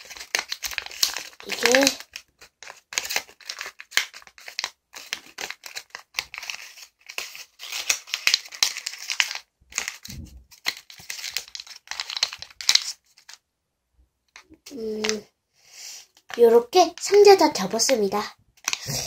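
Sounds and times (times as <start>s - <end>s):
paper crinkling and rustling: 0.0s - 13.4s, 16.2s - 19.0s.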